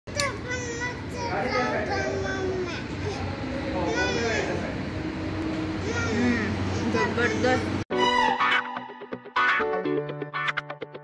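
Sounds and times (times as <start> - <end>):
children chattering and calling out: 0.1 - 5.0, 5.6 - 7.8.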